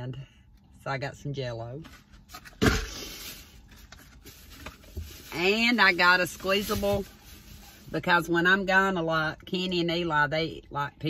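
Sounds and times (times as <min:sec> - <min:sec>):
plastic shopping bag rustling: 0:02.9 - 0:08.0.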